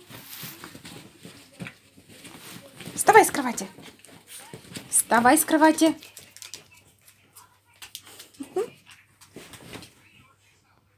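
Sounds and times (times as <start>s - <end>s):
faint rustles and knocks: 0.0s - 5.4s.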